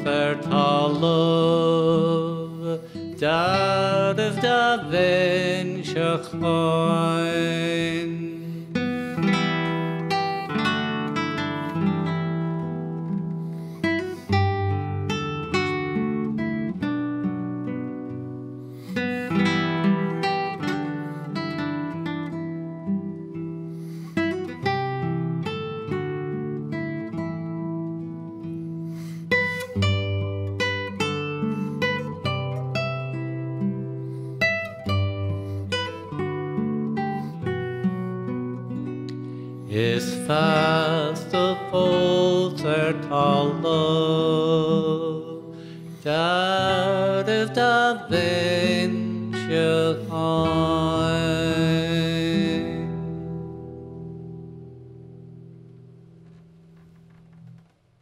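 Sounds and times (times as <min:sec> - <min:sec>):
classical guitar fingerpicking: 0:00.0 - 0:58.0.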